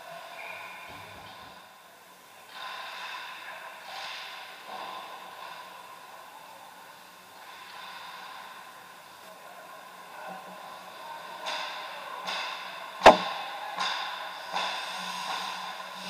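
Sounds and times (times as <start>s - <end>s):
indoor ice arena hum: 0.0s - 16.0s.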